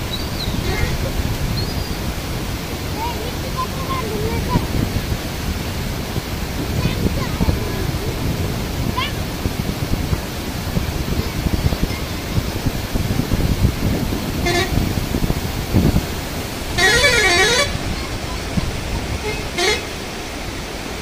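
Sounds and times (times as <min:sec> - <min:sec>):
floodwater rushing: 0:00.0 - 0:21.0
vehicle horn: 0:14.3 - 0:15.3, 0:16.7 - 0:18.2, 0:19.1 - 0:20.1.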